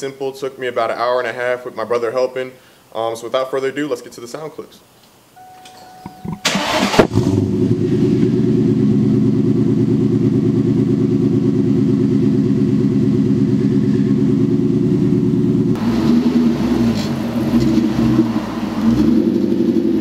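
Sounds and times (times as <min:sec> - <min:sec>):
starter motor cranking: 0:06.4 - 0:07.4
car engine idling: 0:06.4 - 0:20.0.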